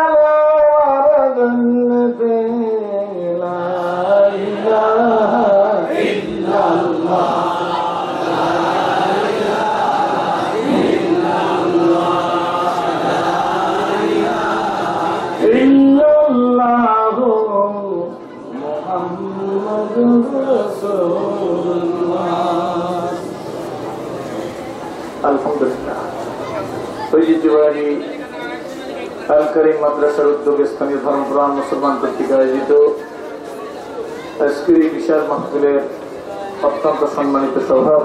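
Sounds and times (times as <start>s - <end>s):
man chanting into microphone: 0.0s - 7.8s, 8.6s - 23.3s, 29.3s - 33.0s.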